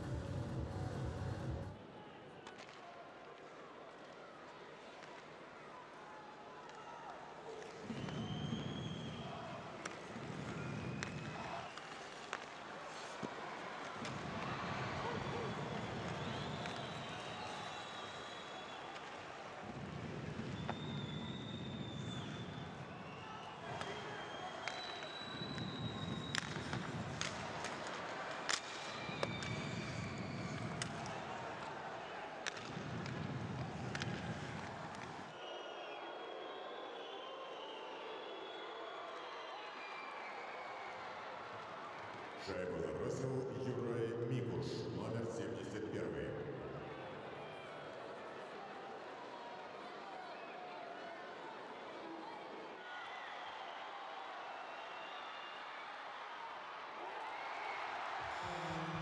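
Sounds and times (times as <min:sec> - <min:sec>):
crowd noise: 0:00.0 - 0:20.6, 0:22.1 - 0:59.0
hockey sticks and puck clicking: 0:09.8 - 0:13.4, 0:24.6 - 0:29.7, 0:30.4 - 0:31.1, 0:32.4 - 0:35.2.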